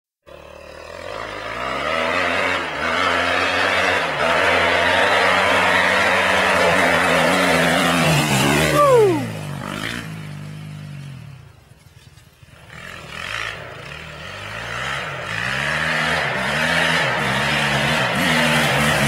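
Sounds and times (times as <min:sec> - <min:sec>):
motocross bike engine: 0:00.2 - 0:19.0.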